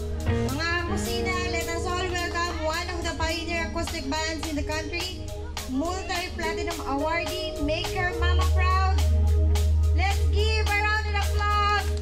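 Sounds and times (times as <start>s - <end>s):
pop-rock band playing: 0.0s - 12.0s.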